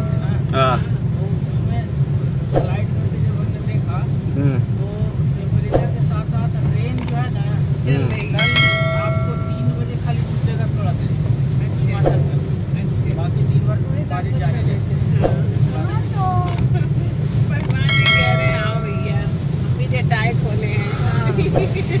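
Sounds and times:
bell-like chime: 0:08.4 - 0:10.2, 0:17.9 - 0:19.4.

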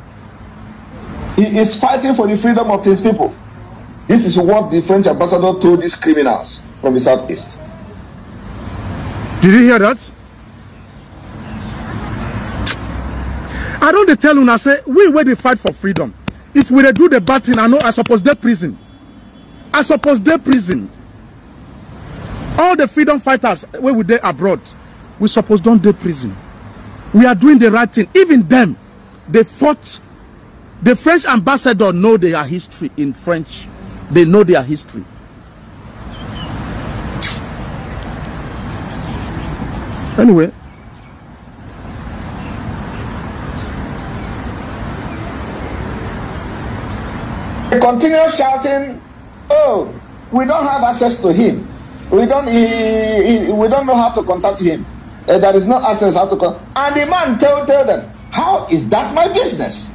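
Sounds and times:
passing vehicle engine and tyres: 0:00.0 - 0:59.9
short hiss: 0:11.3 - 0:13.8, 0:36.1 - 0:39.4, 0:43.0 - 0:43.8
brief sharp sound: 0:37.2 - 0:37.5.

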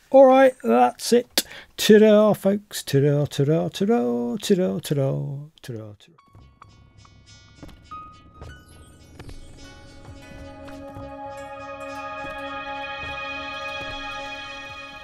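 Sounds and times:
sustained chord: 0:08.1 - 0:15.0.

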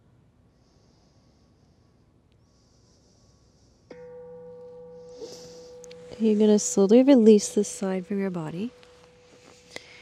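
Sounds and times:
meditation bell ringing: 0:03.9 - 0:10.0.

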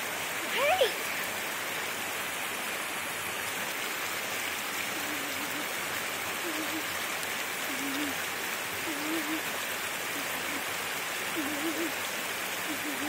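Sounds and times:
flowing water rushing: 0:00.0 - 0:13.0.

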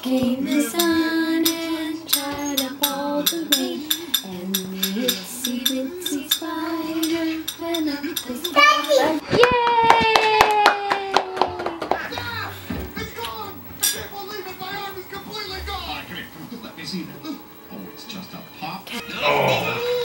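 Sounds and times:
woman singing: 0:00.0 - 0:09.2
hands clapping: 0:09.4 - 0:12.3.

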